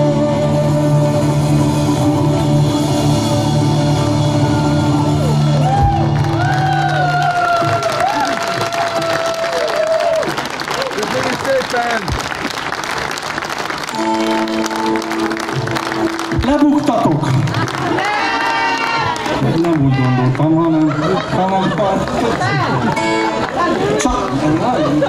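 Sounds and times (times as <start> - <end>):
live band holding a chord: 0.0 - 6.9, 13.8 - 18.9
audience applause and cheering: 3.9 - 25.0
held instrument notes: 13.9 - 17.2.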